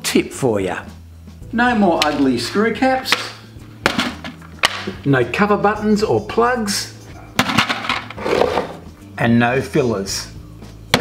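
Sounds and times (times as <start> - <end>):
blister packs slapped on wooden bench: 3.1 - 5.0.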